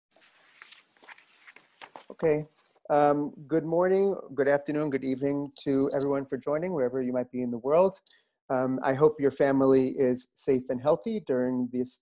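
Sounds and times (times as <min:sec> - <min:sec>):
faint steady hiss: 0:00.1 - 0:12.0.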